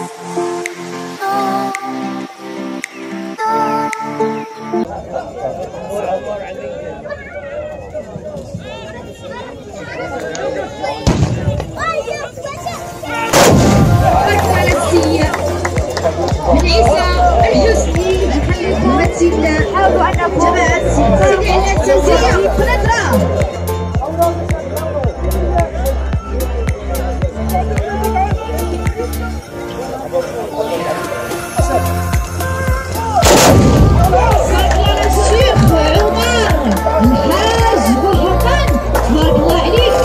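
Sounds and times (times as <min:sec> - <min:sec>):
musket volley: 0:11.0 - 0:11.8, 0:13.3 - 0:14.8, 0:33.2 - 0:36.8.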